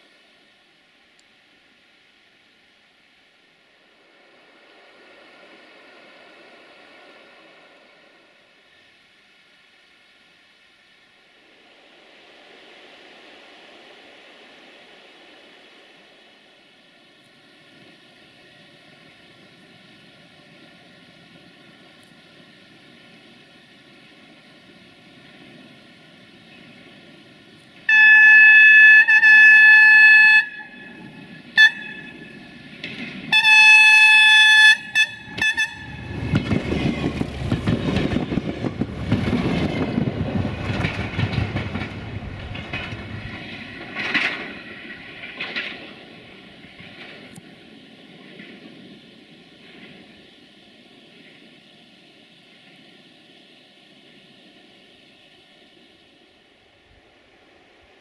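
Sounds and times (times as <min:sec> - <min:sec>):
train wheels rumbling on rails: 0:11.2 - 0:58.0
diesel engine rumbling: 0:25.3 - 0:45.4
train horn blasts: 0:27.9 - 0:32.7, 0:33.3 - 0:36.4.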